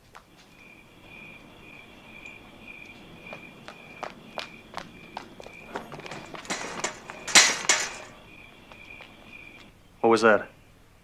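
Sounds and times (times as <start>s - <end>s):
footsteps: 0.0s - 9.7s
sharp scuffs of footsteps: 0.0s - 9.7s
crickets chirping: 0.0s - 11.0s.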